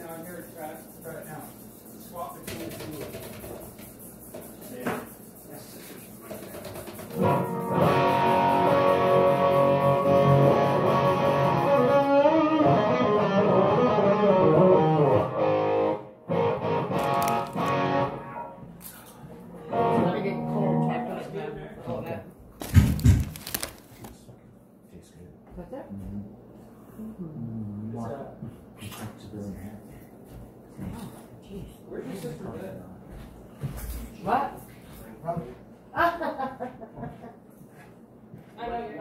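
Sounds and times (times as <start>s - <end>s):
guitar chords through effects: 7.2s - 18.7s, 19.6s - 21.2s.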